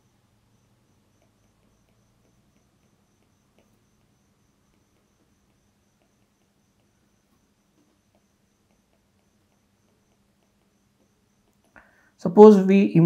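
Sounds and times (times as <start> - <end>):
faint pulsing high-pitched tone: 0.0 - 13.0
light ticks: 1.1 - 7.2.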